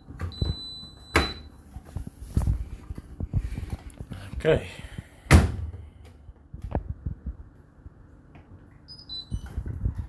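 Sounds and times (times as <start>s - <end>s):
washing machine electronic beeps: 0.0s - 1.8s, 8.8s - 10.0s.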